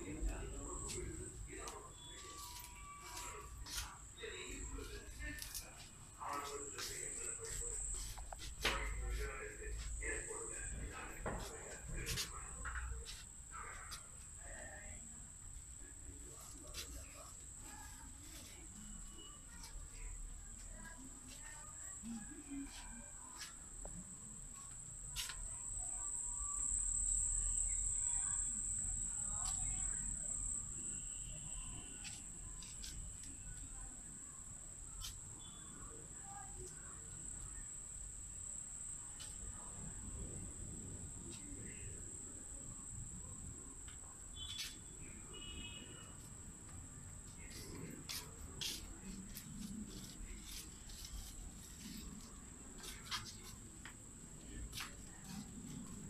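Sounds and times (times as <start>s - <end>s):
cricket trilling: 0.0s - 15.1s, 15.7s - 21.0s, 21.6s - 46.4s.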